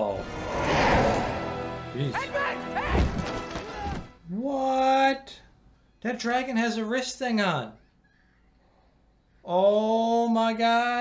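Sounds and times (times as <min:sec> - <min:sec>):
film music: 0:00.0 - 0:04.3
shouted voices: 0:02.1 - 0:04.1.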